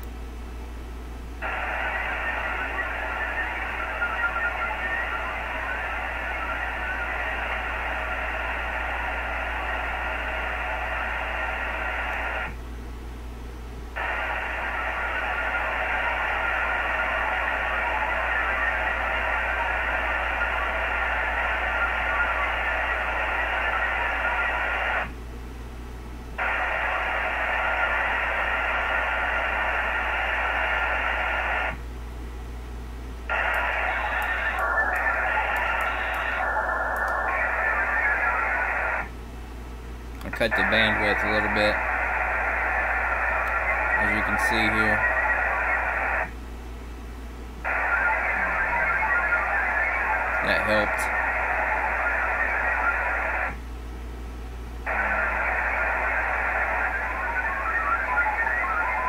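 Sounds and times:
steady low hum: 0.0 - 59.0
modem data signal tones: 1.4 - 12.6, 13.9 - 25.2, 26.4 - 31.8, 33.3 - 39.2, 40.2 - 46.4, 47.6 - 53.7, 54.8 - 59.0.

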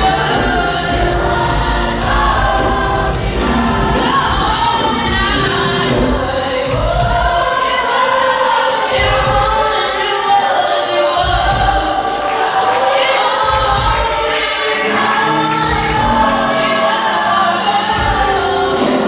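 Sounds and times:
gospel choir singing: 0.0 - 19.0.

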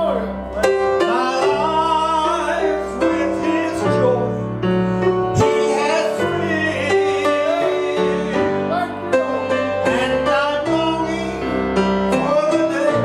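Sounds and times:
instrumental accompaniment: 0.0 - 13.0
man singing with vibrato: 0.0 - 13.0.

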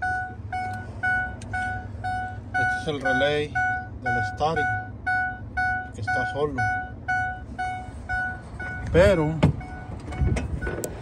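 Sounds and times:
warning chime beeping: 0.0 - 10.8.

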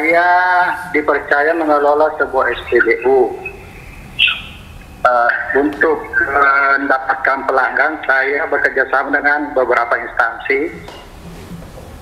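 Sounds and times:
man speaking over telephone: 0.0 - 4.4, 5.0 - 10.9.

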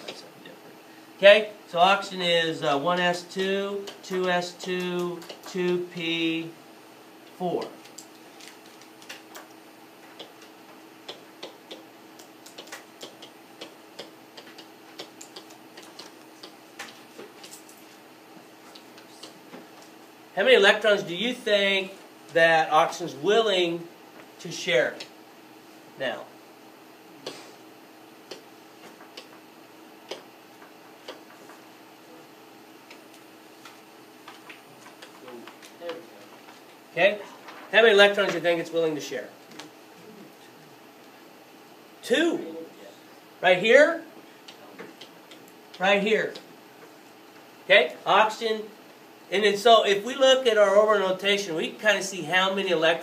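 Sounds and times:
faint steady hum: 0.0 - 53.0
stylus tapping and clicking: 3.0 - 5.8, 7.6 - 17.8, 28.3 - 31.6, 32.8 - 36.0
faint clicks and taps: 32.8 - 36.8.

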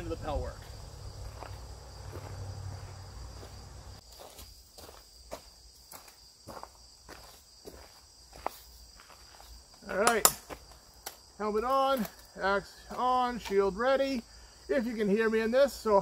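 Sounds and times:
insects chirring: 0.0 - 16.0
footsteps on gravel: 0.2 - 10.8.

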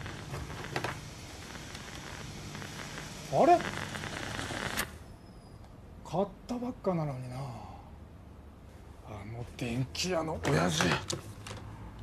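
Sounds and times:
tv crackling hiss: 0.0 - 5.0.

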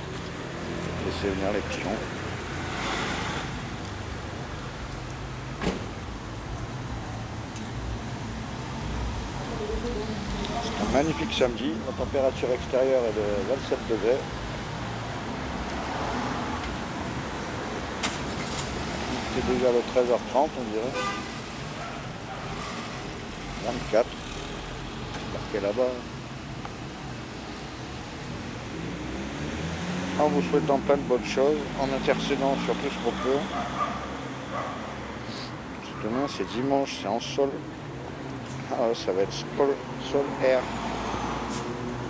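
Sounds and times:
city street traffic rumble: 0.0 - 42.0.

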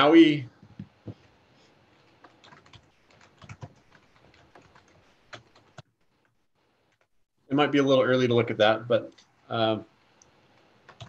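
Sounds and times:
typing on a computer keyboard: 2.0 - 5.9.

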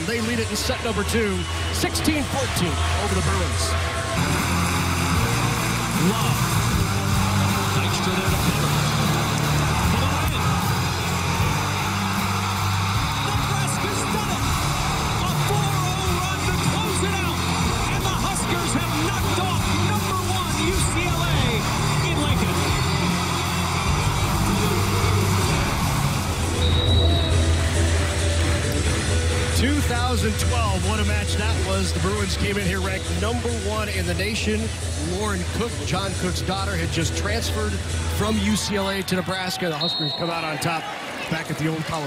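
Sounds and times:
background music with bass: 0.0 - 39.2
crowd cheering: 0.0 - 42.0.

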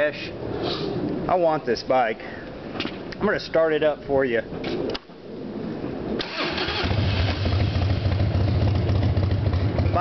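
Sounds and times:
motorcycle engine starting and idling: 6.2 - 10.0.

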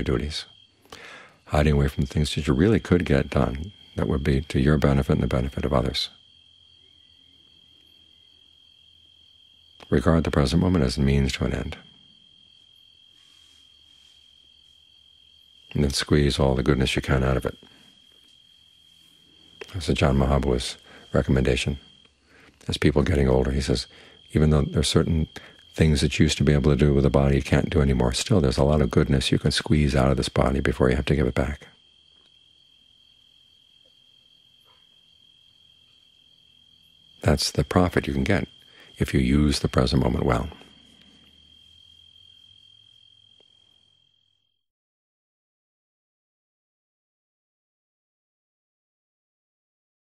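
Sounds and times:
crickets trilling: 0.0 - 44.6.

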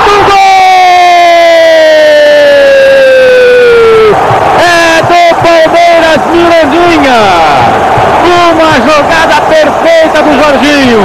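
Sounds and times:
commentator's long goal shout: 0.0 - 11.0
stadium crowd cheering: 0.0 - 11.0.

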